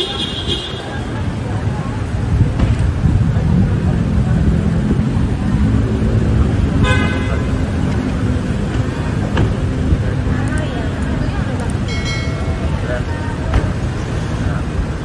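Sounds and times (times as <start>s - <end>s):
people talking: 0.0s - 15.0s
traffic and idling cars: 0.0s - 15.0s
car horn toot: 6.8s - 7.6s.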